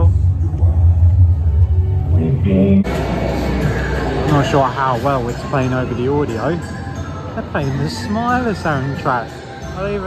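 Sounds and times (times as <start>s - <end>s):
deep rumbling drone: 0.0s - 4.3s
music over loudspeakers: 0.0s - 10.0s.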